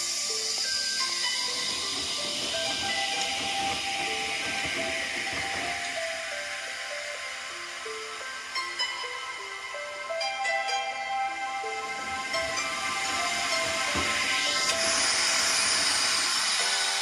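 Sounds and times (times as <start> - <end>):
water spraying into washing machine: 0.0 - 9.4, 11.7 - 17.0
background music: 0.0 - 17.0.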